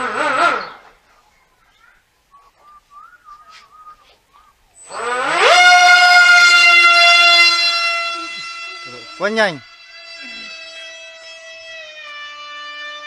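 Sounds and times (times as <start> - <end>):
model plane motor whine: 0.0 - 0.9, 4.8 - 13.0.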